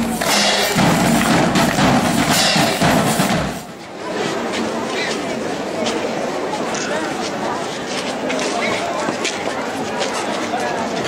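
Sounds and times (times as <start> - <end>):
marching band drums and cymbals: 0.0 - 3.9.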